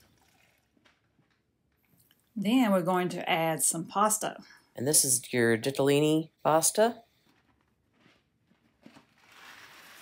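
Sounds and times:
pasta box rustling: 7.2s - 10.0s.

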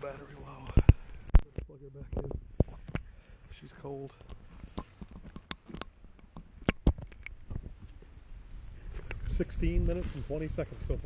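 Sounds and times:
sharp clicks and crunches: 0.5s - 3.1s, 3.8s - 8.0s
wind rumbling on microphone: 6.6s - 11.0s.

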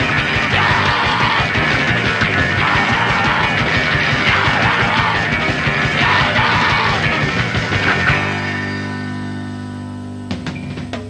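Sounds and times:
shouted vocals: 0.0s - 7.7s
pounding drums: 0.0s - 8.4s
bass guitar: 0.0s - 11.0s
distorted electric guitar: 0.0s - 11.0s.

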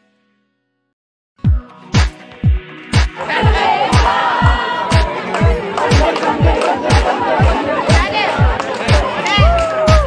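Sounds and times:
dance music with kick drum: 1.5s - 10.0s
crowd shouting and cheering: 3.1s - 10.0s.

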